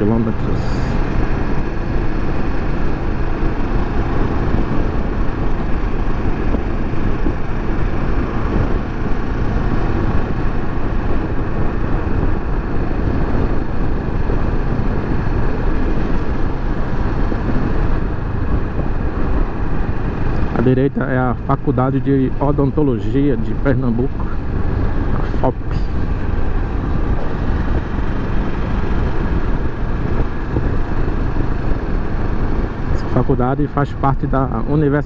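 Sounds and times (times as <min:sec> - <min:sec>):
motorcycle engine cruising: 0:00.0 - 0:35.0
tyre noise on road: 0:00.0 - 0:35.0
wind rushing over microphone: 0:00.0 - 0:35.0.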